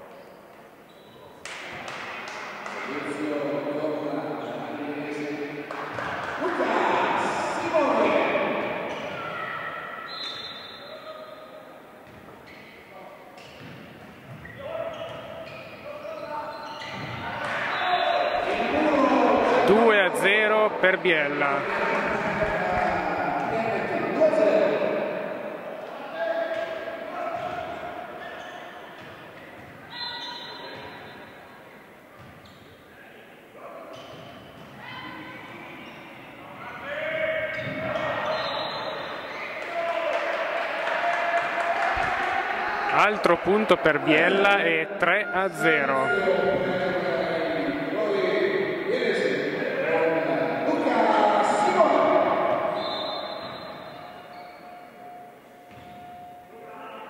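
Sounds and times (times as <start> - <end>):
people shouting: 6.4 - 10.1.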